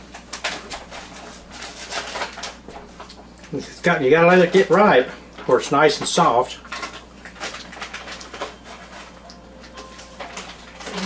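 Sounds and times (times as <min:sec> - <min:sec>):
wet chewing and lip smacks: 0:07.2 - 0:08.4.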